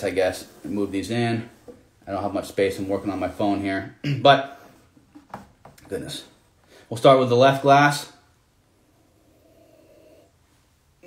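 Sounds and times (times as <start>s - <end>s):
soft breath through nose: 8.7s - 10.7s.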